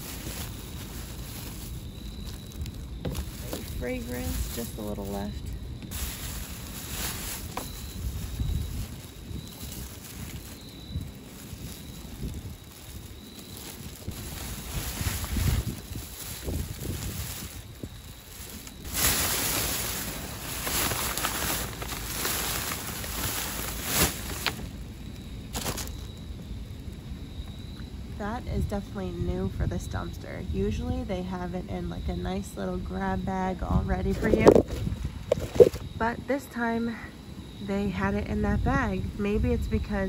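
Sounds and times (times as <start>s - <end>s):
plastic bags rustling and crinkling: 0.0s - 26.2s, 33.9s - 35.9s.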